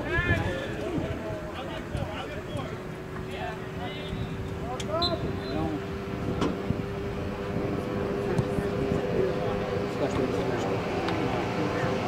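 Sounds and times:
distant players shouting: 0:00.0 - 0:06.1.

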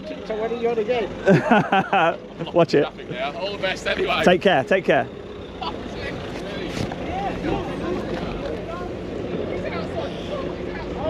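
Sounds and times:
van engine pulling away: 0:00.0 - 0:11.0
faint voices: 0:02.3 - 0:11.0.

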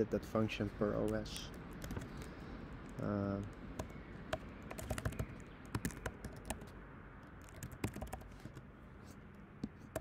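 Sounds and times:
keyboard typing clicks: 0:01.0 - 0:02.3, 0:03.8 - 0:06.7, 0:07.4 - 0:08.6.

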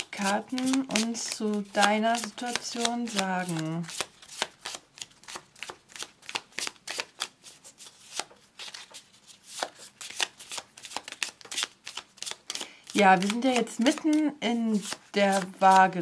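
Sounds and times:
cards shuffling: 0:00.0 - 0:16.0.

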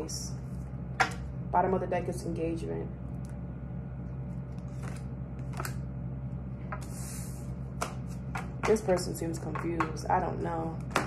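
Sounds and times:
low steady hum: 0:00.0 - 0:11.0
cards sliding rustle: 0:04.6 - 0:05.8.

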